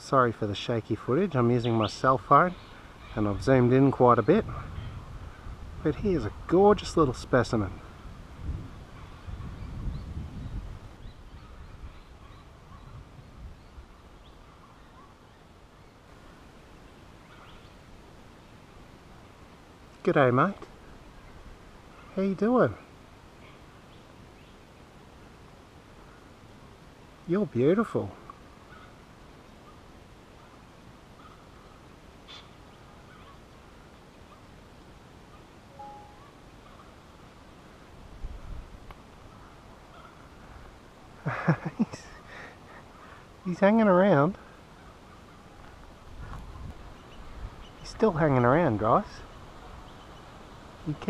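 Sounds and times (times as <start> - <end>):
distant birds chirping: 0.0 - 38.0, 38.9 - 51.0
low background hiss: 0.0 - 51.0
short bird chirps: 35.8 - 36.4.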